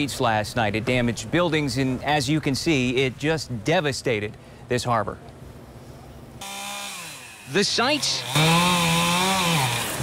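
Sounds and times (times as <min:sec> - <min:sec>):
faint background noise: 0:00.0 - 0:06.4
chainsaw running: 0:06.4 - 0:10.0.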